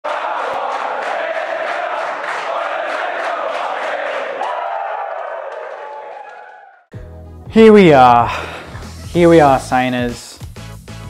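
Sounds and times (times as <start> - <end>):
crowd chanting and cheering: 0.0 - 6.9
rhythmic clapping: 0.0 - 6.9, 8.6 - 10.7.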